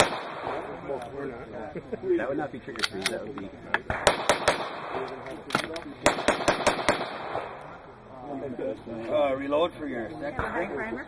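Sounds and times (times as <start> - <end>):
handgun shot: 0.0 - 0.7, 3.9 - 7.6
people talking: 0.0 - 3.9, 4.8 - 6.2, 7.7 - 11.0.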